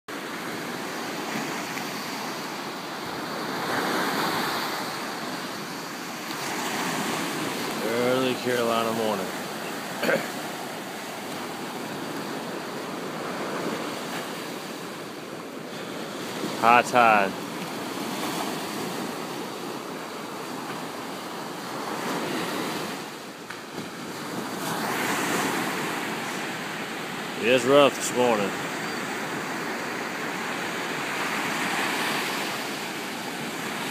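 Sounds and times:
ocean surf breaking on beach: 0.1 - 33.9.

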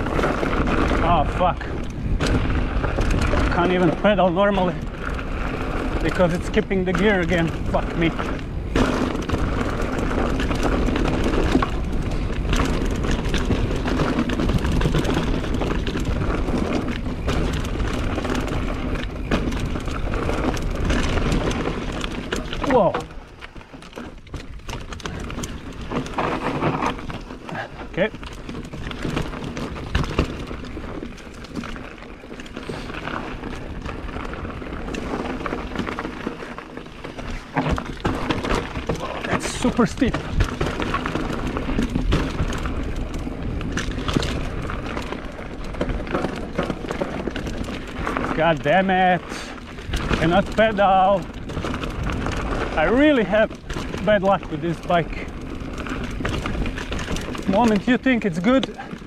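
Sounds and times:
bike rattles and knocks: 0.0 - 59.0
bike tyres on dirt trail: 0.0 - 59.0.

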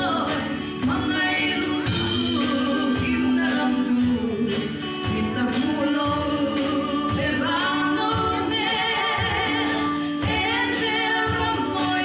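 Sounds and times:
women singing: 0.0 - 12.0
worship band playing gospel song: 0.0 - 12.0.

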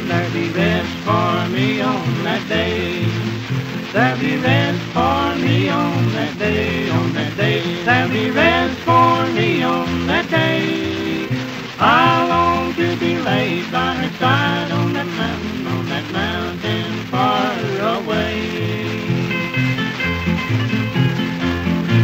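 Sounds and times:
guitars picking melody: 0.0 - 22.0
steady bass line: 0.0 - 22.0.

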